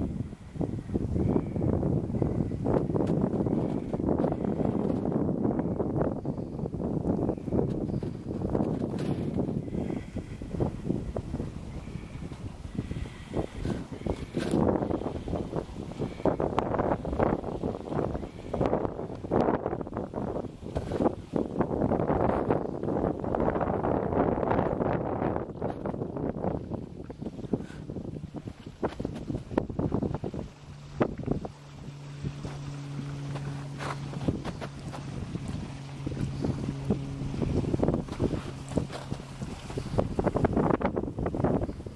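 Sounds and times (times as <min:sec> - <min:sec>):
low hum: 0:00.0 - 0:41.9
wind buffeting microphone: 0:00.0 - 0:41.9.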